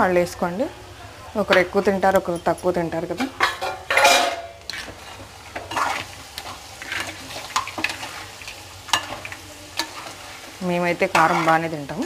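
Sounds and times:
curry sizzling: 0.0 - 12.0
spatula scraping pan: 3.1 - 12.0.

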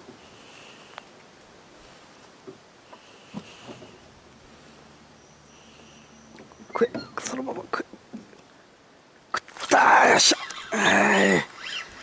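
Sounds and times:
man's wordless exclamation: 9.7 - 11.5.

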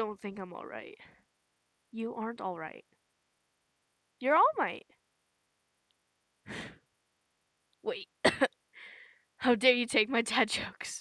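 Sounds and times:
person sighing: 6.5 - 6.8.

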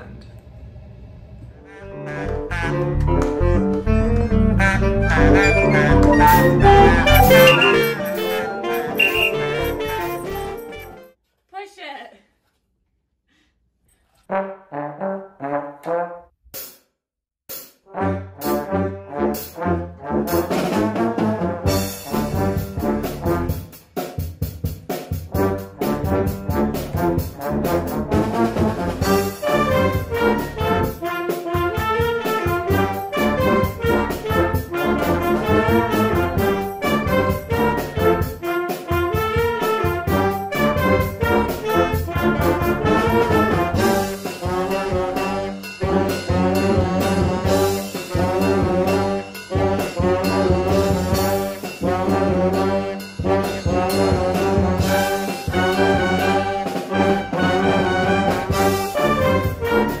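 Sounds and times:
brass band playing: 1.6 - 11.1, 14.3 - 16.2, 17.9 - 23.8, 25.1 - 60.0
drum kit beat: 5.4 - 10.9, 17.5 - 17.8, 20.3 - 60.0.

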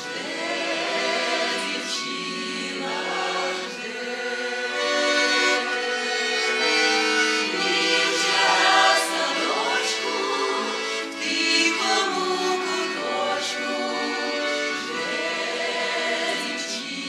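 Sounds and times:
accordion: 0.0 - 17.0
women singing folk song: 0.0 - 17.0.

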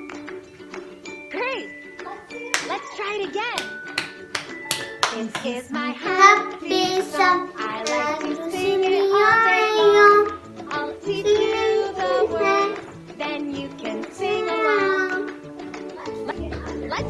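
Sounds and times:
girl singing children's song: 4.9 - 17.0.

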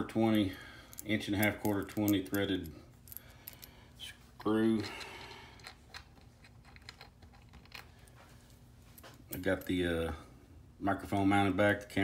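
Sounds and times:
low steady hum: 0.0 - 12.0
hands handling small hardware: 4.4 - 8.3.

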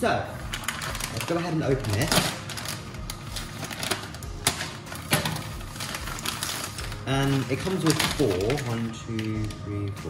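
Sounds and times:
plastic bag crinkling: 0.3 - 10.0
knife cutting plastic: 0.4 - 10.0.

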